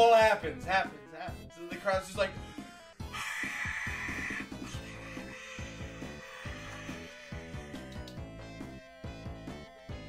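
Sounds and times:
background music with steady beat: 0.0 - 10.0.

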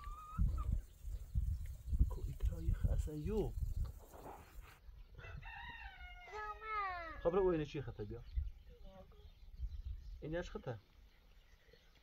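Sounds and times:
rooster crowing: 5.2 - 6.6.

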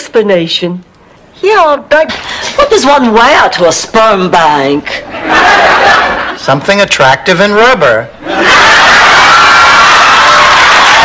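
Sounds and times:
audience laughing loudly: 5.1 - 6.4.

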